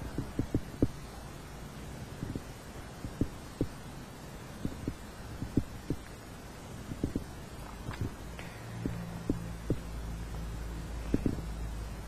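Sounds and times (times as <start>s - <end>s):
soft low thumps: 0.0s - 1.1s, 2.2s - 3.8s, 4.6s - 6.2s, 6.8s - 10.1s, 10.8s - 11.6s
steady low hum: 0.0s - 12.0s.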